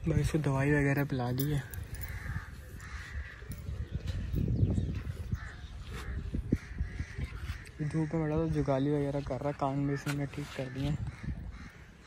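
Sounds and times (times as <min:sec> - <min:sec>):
crows cawing: 0:01.4 - 0:04.3, 0:05.2 - 0:12.0.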